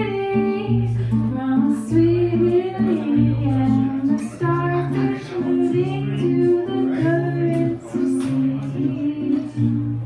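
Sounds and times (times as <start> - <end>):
acoustic guitar: 0.0 - 10.0
woman singing: 0.0 - 10.0.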